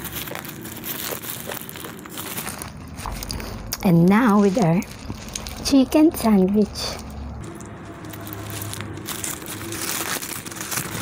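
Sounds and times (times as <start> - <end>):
paper wrapper crinkling: 0.0 - 11.0.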